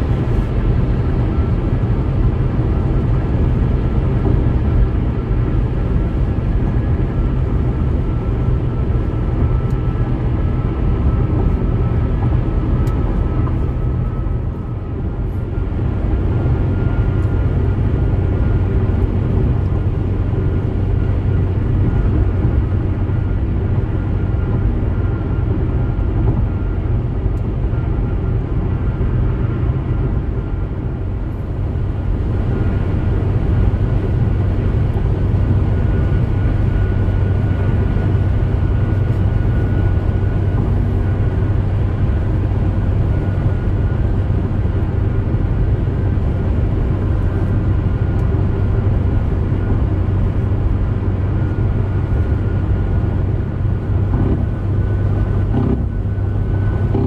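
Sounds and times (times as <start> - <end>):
road and tyre noise: 0.0 - 57.0.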